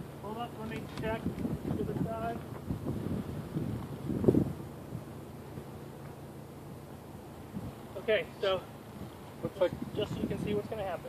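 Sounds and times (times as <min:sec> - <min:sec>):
wind buffeting microphone: 0:00.0 - 0:05.8, 0:07.4 - 0:11.0
microphone handling rustle: 0:00.6 - 0:06.2.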